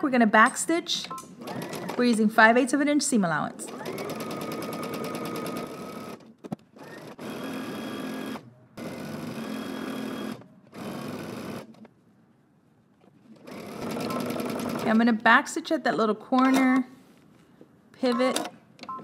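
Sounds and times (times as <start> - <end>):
electric sewing machine stitching: 1.4 - 2.0, 3.6 - 6.2, 6.8 - 11.8, 13.4 - 15.0.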